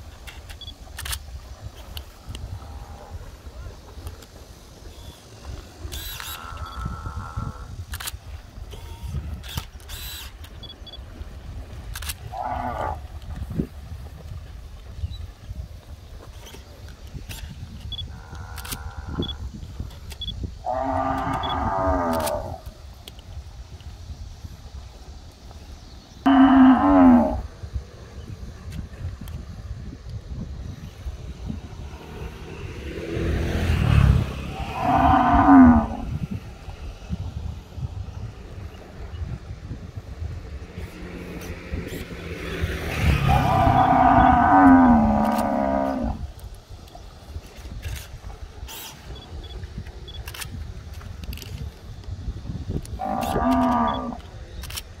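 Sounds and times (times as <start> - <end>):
wind rumble on microphone: 0.0 - 55.0
cattle mooing: 34.5 - 36.0, 43.2 - 46.2, 53.0 - 54.2.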